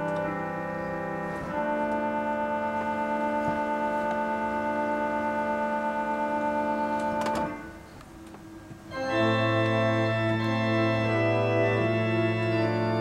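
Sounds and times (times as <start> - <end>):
pipe organ chord: 0.0 - 13.0.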